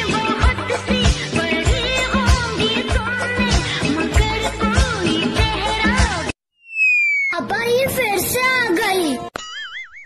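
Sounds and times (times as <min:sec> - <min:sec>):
cartoon wobbling tone effect: 0:06.6 - 0:07.6.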